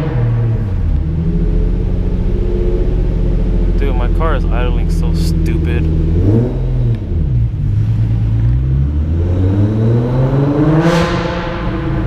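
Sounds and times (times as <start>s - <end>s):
car engine idling: 0.0s - 8.6s.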